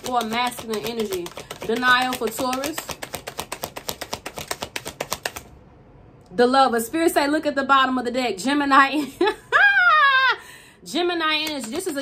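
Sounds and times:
cards being shuffled: 0:00.0 - 0:05.5.

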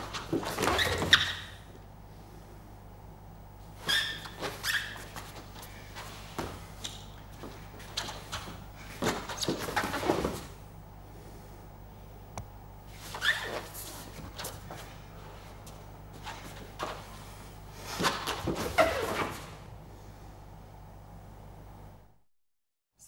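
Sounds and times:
low electrical hum: 0:00.0 - 0:22.2.

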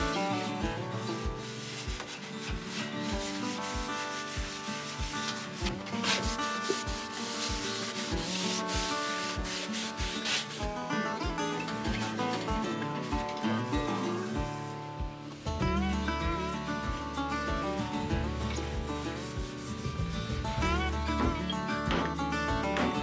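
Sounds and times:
paper towel scrubbing metal: 0:00.0 - 0:20.4
background music with steady beat: 0:00.0 - 0:23.0.

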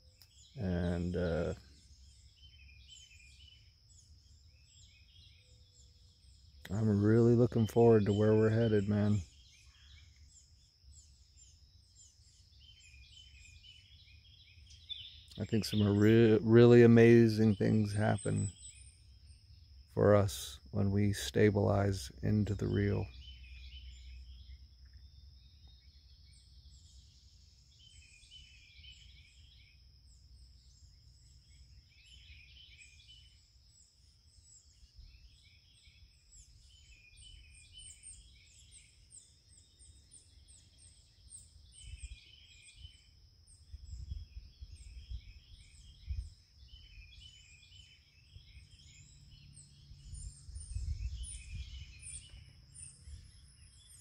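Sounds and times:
birds chirping and singing: 0:00.0 - 0:54.0.

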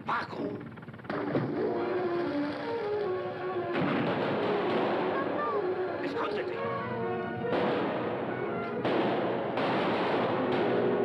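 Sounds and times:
gunshots with echoing tail: 0:01.0 - 0:11.0.

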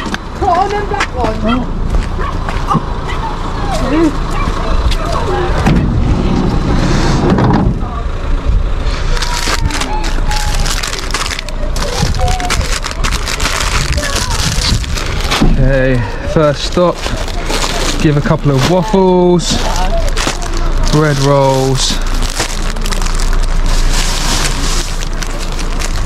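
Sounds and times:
voices: 0:00.0 - 0:06.7, 0:07.6 - 0:26.0
steady low rumble: 0:00.0 - 0:26.0
plastic packaging rustling: 0:09.1 - 0:26.0.

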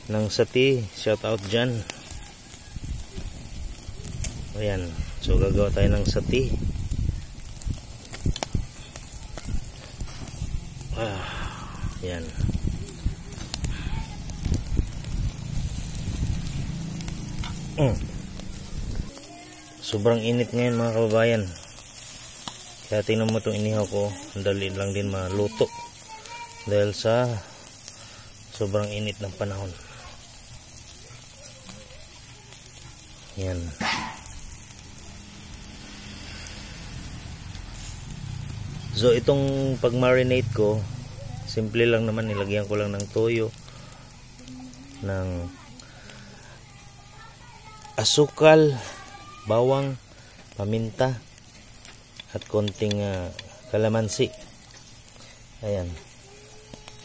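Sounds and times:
wood fire crackling: 0:00.0 - 0:57.0
fire pops: 0:00.9 - 0:26.7, 0:27.5 - 0:48.0, 0:50.1 - 0:57.0
low steady rumble: 0:02.8 - 0:19.4, 0:34.2 - 0:41.8.

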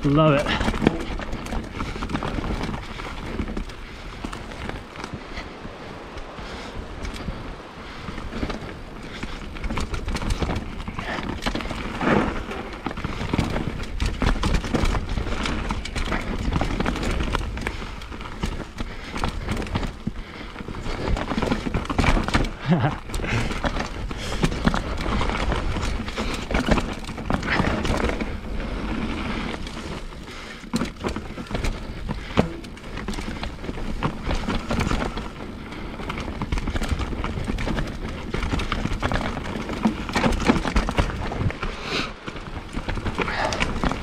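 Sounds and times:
bike rattling over bumps: 0:00.0 - 0:44.0
bike tyres on dirt: 0:00.0 - 0:44.0.

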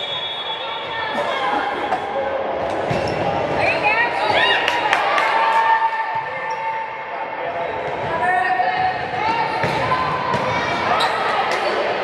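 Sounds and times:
chatter in a gym: 0:00.0 - 0:12.0
shoes squeaking on court floor: 0:10.9 - 0:11.6.

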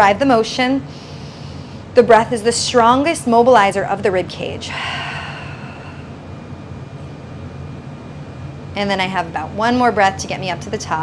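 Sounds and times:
low room hum: 0:00.0 - 0:11.0
person exhaling: 0:04.7 - 0:06.2.

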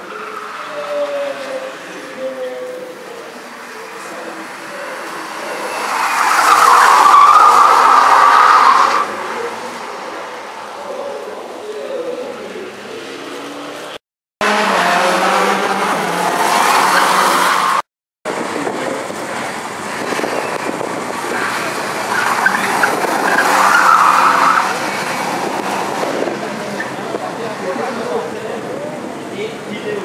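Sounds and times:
tyres squealing: 0:00.0 - 0:11.3, 0:21.3 - 0:25.9
rally car engines revving: 0:00.0 - 0:30.0.

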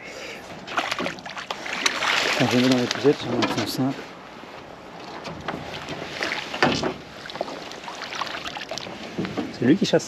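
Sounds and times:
water splashing: 0:00.6 - 0:04.0, 0:04.9 - 0:09.4.

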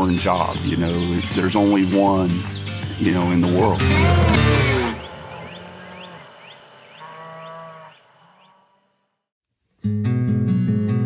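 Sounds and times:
cow lowing: 0:03.8 - 0:08.8
short rising chirps: 0:03.9 - 0:08.4.

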